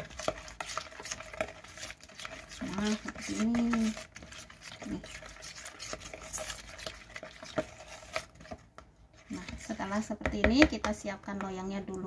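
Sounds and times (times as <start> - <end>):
utensil stirring and scraping bowl: 0.0 - 11.5.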